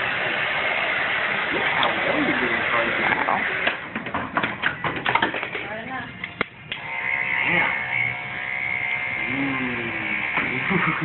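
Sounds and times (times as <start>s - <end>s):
electric hair clippers buzzing: 0.0s - 3.8s, 6.6s - 11.0s.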